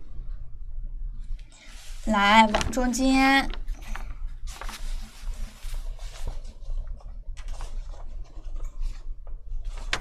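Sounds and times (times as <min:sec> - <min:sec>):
steady low hum: 0:00.0 - 0:10.0
paper rustling and scraping: 0:01.6 - 0:10.0.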